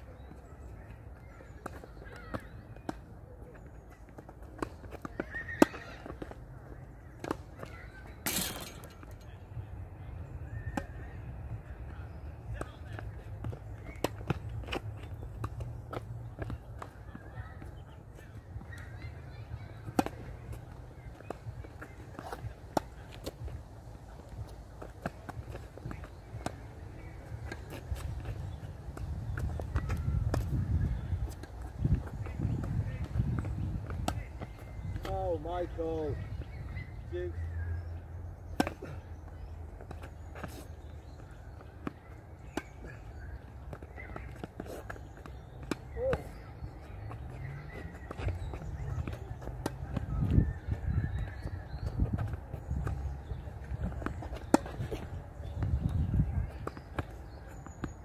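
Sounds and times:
tennis ball bounces: 0:01.1 - 0:09.4, 0:10.2 - 0:58.0
racket striking tennis ball: 0:53.9 - 0:55.1.

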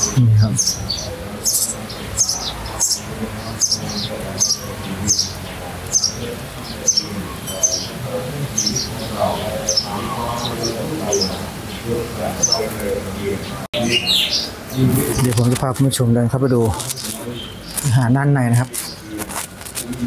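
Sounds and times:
small bird chirping: 0:00.0 - 0:11.8.

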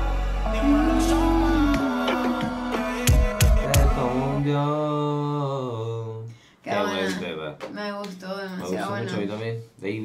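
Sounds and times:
person talking: 0:06.7 - 0:07.5, 0:08.2 - 0:09.6.

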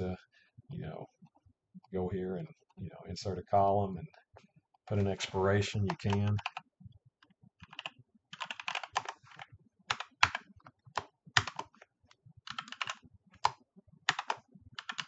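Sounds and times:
typing on computer keyboard: 0:05.8 - 0:06.6, 0:07.6 - 0:11.8, 0:12.5 - 0:15.0.

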